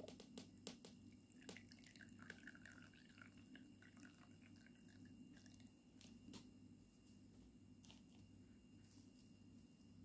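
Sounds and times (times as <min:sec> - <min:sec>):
water trickling into glass dish: 0:01.1 - 0:05.8.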